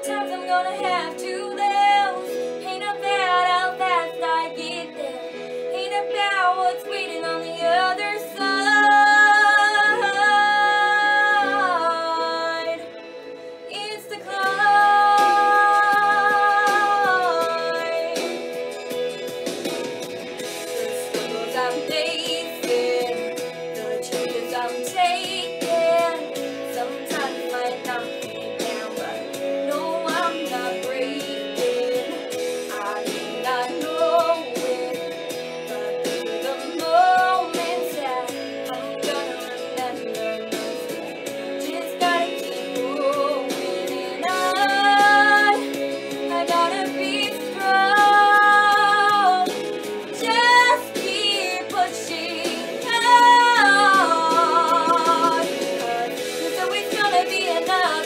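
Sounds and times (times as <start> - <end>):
young woman singing: 0.0 - 12.9, 13.7 - 18.5, 21.0 - 40.6, 41.5 - 58.0.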